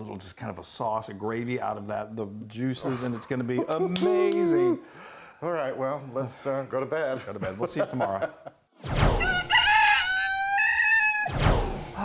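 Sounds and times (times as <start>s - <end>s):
rooster crowing: 9.2s - 11.3s
short whoosh: 11.3s - 12.0s.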